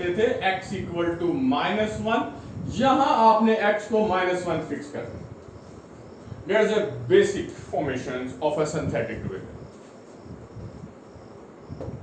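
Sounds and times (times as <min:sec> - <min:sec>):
low background noise: 0:00.0 - 0:12.0
faint high-pitched chirring: 0:04.3 - 0:12.0.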